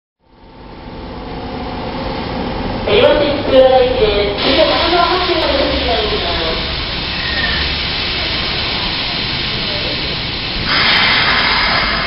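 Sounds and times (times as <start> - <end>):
electric trains standing: 3.0 - 12.0
loud hiss of air: 4.4 - 12.0.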